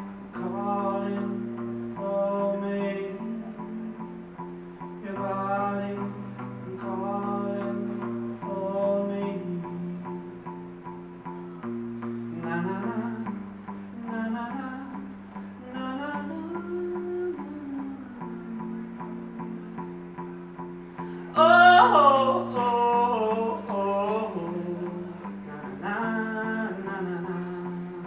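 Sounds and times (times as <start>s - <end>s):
man singing: 0.0s - 11.0s, 11.6s - 20.1s, 21.2s - 28.0s
electric guitar chords: 0.0s - 28.0s.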